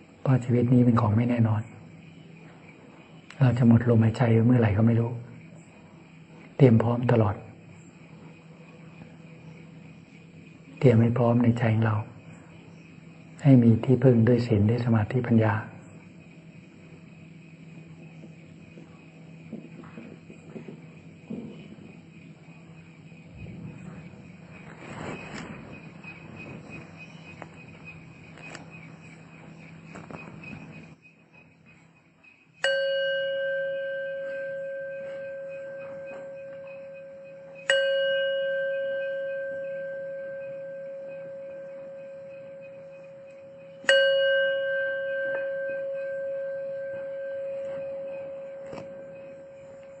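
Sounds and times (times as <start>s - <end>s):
fast insect chirping: 0.0s - 32.6s, 33.4s - 50.0s
low hum: 1.0s - 31.1s, 32.6s - 50.0s
meditation bell ringing: 32.6s - 50.0s.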